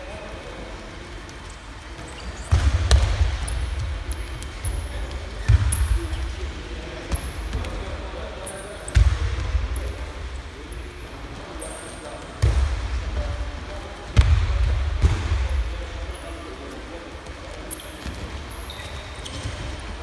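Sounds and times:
background voices in a gym: 0:00.0 - 0:20.0.

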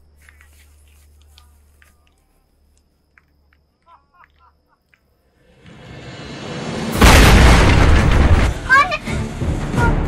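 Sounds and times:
large explosion rumble: 0:06.6 - 0:08.9.

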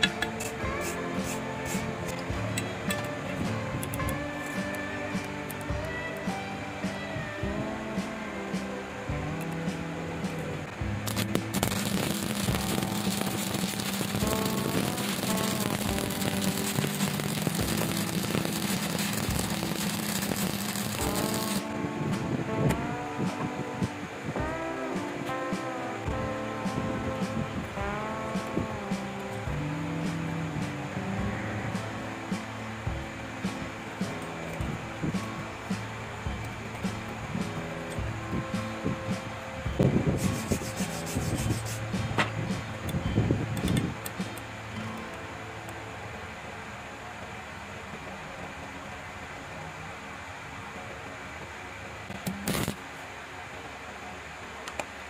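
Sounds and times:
background music: 0:00.0 - 0:55.0
welding arc crackling: 0:10.3 - 0:22.8, 0:40.0 - 0:42.4, 0:52.2 - 0:52.9.

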